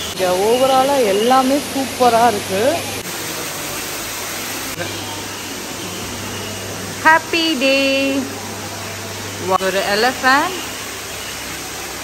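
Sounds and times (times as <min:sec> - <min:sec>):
steady hiss: 0:00.0 - 0:12.0.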